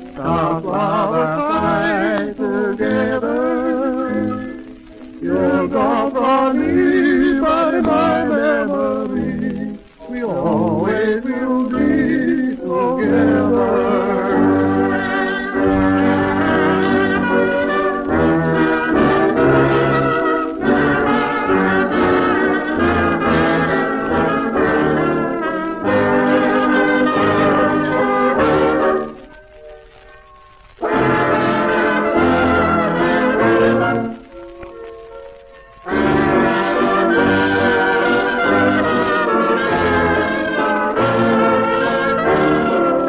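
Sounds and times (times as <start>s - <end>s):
brass melody: 0.0s - 43.0s
dance band playing a waltz: 0.0s - 43.0s.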